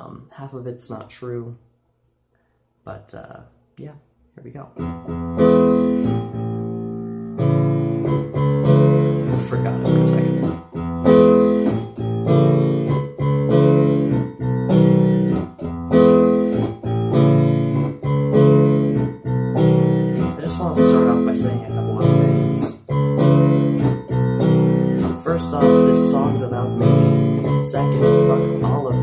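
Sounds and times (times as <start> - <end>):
piano chords on a keyboard: 4.8 - 29.0.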